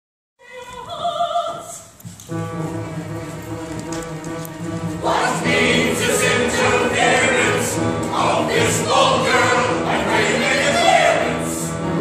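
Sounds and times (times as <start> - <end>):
orchestra holding chords: 2.3 - 12.0
opera chorus singing loudly: 4.9 - 12.0.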